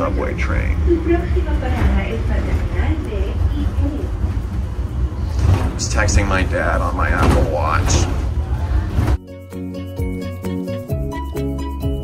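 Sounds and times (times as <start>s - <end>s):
man speaking: 0.0s - 0.9s, 5.8s - 8.2s
people mover car rumbling: 0.0s - 9.2s.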